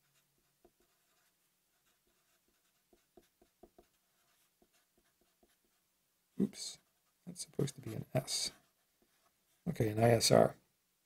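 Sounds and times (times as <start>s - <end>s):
marker scratching on paper: 0.0s - 5.8s, 6.4s - 9.6s.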